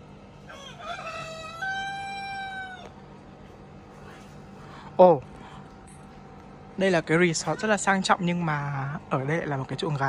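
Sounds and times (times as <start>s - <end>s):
rooster crowing: 0.4s - 3.2s.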